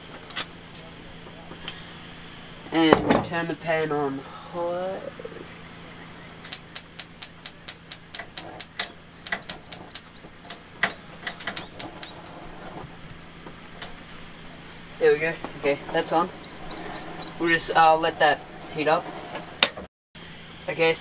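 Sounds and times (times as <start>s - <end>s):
gas burner igniter clicking: 6.4s - 12.3s.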